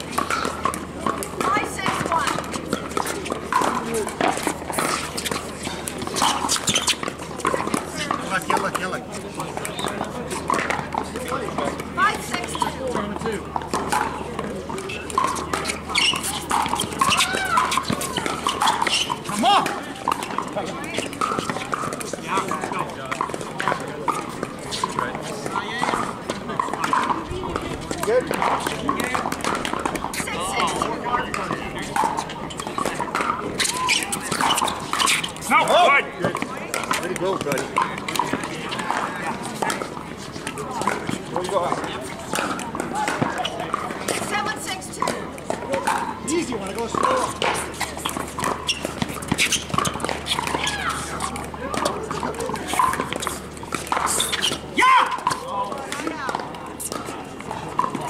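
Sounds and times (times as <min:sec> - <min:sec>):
murmur of voices: 0:00.0 - 0:58.0.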